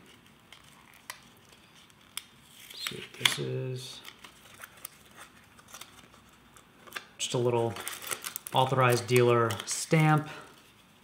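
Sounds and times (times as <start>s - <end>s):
faint paper rustle: 0.0s - 11.0s
light clicks of packaging: 0.1s - 10.3s.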